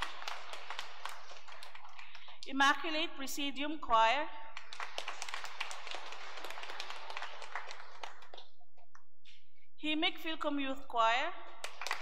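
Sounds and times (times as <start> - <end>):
congregation applauding: 0.0 - 2.4, 4.5 - 8.6, 11.6 - 12.0.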